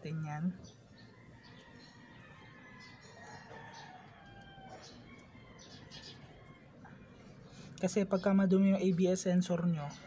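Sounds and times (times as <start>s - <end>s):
faint rooster crow: 1.0s - 7.5s.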